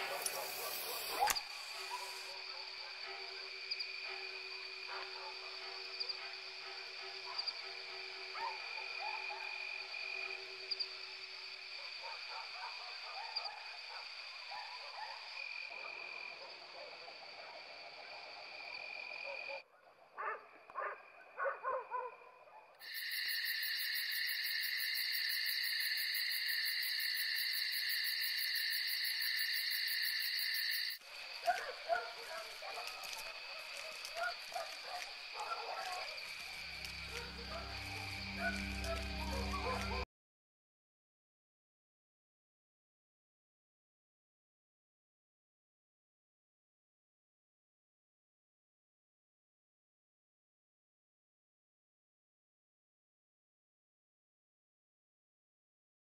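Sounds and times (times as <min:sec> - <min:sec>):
high-pitched night animal calls: 0:00.0 - 0:11.0, 0:22.8 - 0:40.0.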